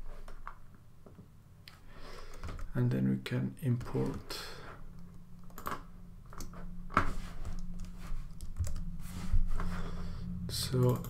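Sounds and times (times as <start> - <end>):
low steady hum: 0.0 - 11.0
computer keyboard tapping: 2.3 - 2.7, 3.8 - 4.3, 5.4 - 6.6, 7.4 - 8.9.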